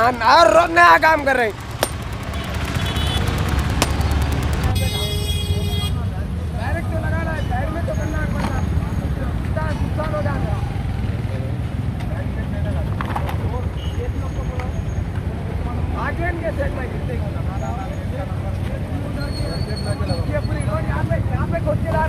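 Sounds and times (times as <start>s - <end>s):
people talking indistinctly: 0.0s - 22.0s
road traffic rumble: 0.0s - 22.0s
vehicle horn: 2.3s - 6.0s.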